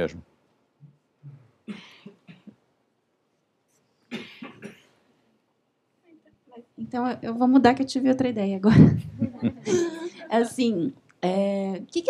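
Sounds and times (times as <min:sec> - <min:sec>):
person coughing: 0:01.7 - 0:02.5, 0:04.1 - 0:05.0.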